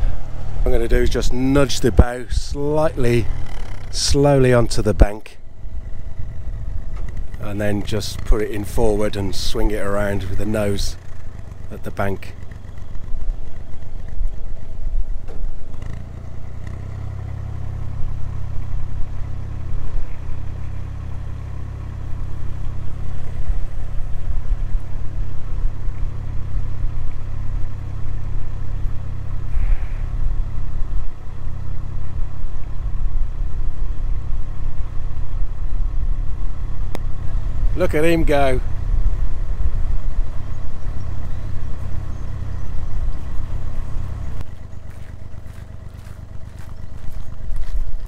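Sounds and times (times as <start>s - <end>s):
boat engine low rumble: 0.0s - 48.0s.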